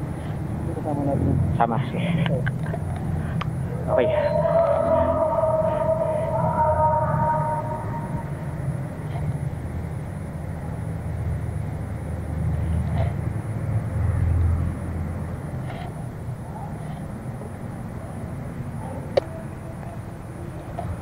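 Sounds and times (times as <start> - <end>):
steady low rumble: 0.0 - 16.5.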